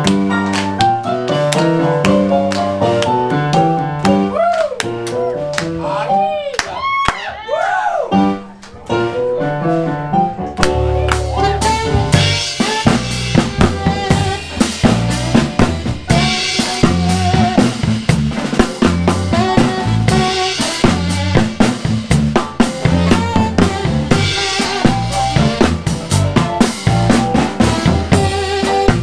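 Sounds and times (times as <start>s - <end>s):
drum kit: 0.0s - 6.9s, 8.1s - 29.0s
live band playing: 0.0s - 7.0s, 8.1s - 29.0s
strong bass line: 10.6s - 29.0s.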